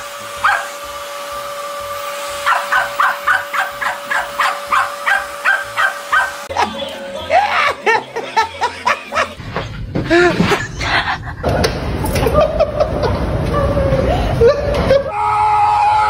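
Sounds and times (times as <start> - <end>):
vacuum cleaner motor whine: 0.0 - 6.6
dog yelps: 0.4 - 0.8, 2.4 - 6.4
small dog yapping: 0.4 - 0.8, 2.4 - 6.4.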